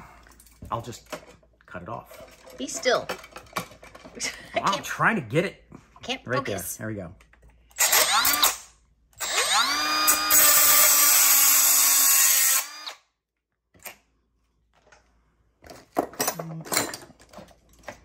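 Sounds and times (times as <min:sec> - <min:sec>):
cut-off tool grinding steel: 0:09.2 - 0:13.0.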